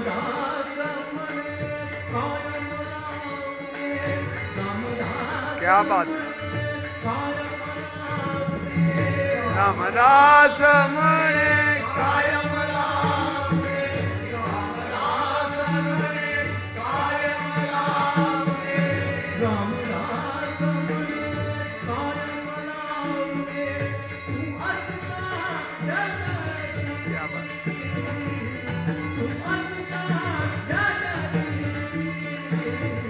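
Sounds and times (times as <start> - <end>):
harmonium holding reed notes: 0.0 - 33.0
steady percussion beat: 1.2 - 33.0
person singing: 27.0 - 28.3.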